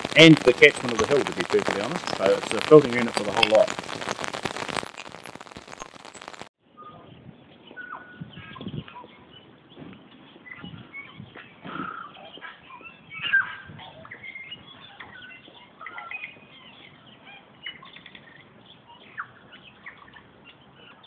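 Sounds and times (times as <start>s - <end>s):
birds chirping and whistling: 6.8s - 21.0s.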